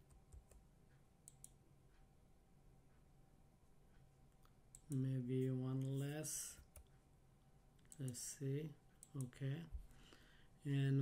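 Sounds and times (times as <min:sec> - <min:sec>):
computer mouse clicks: 0:00.0 - 0:01.6, 0:04.3 - 0:07.0, 0:07.8 - 0:08.3, 0:09.0 - 0:09.4.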